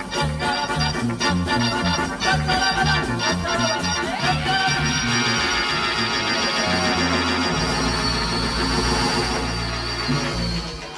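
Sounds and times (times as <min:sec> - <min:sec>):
rock and roll band playing: 0:00.0 - 0:10.9.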